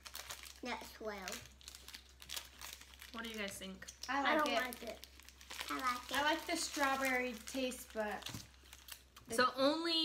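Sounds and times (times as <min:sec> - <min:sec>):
candy wrapper crinkling: 0:00.0 - 0:09.4.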